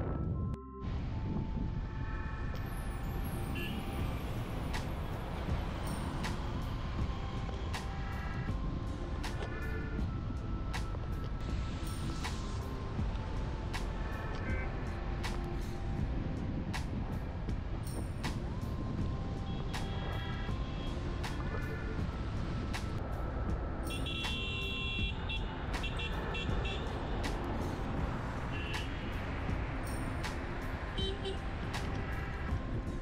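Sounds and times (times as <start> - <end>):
road and engine rumble: 0.0 - 33.0
car horns tooting: 23.9 - 26.9, 31.0 - 31.4.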